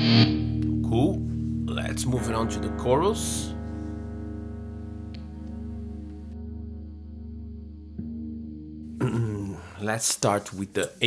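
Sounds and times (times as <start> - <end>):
electric guitar chord sustaining: 0.0 - 9.5.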